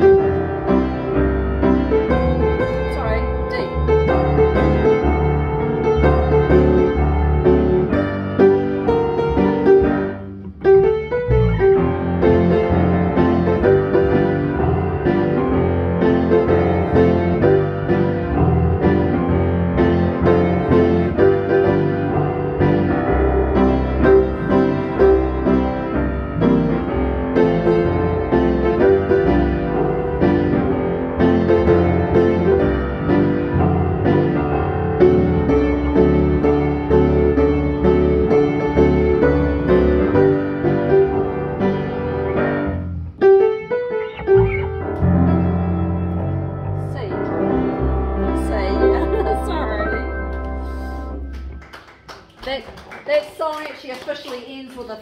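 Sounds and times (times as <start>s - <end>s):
electric bass guitar: 0.0s - 51.6s
upright piano: 0.0s - 55.0s.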